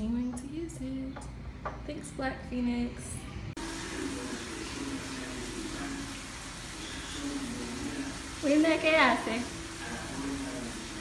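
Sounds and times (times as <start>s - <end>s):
food sizzling in a pan: 3.6s - 11.0s.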